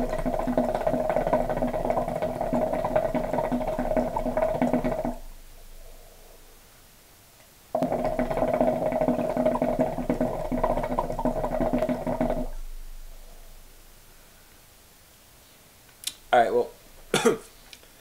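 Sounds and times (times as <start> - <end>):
hookah water bubbling: 0.0 - 6.4, 7.8 - 13.7.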